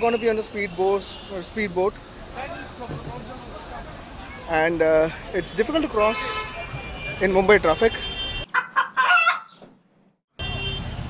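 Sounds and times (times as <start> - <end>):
street traffic hum: 0.0 - 11.0.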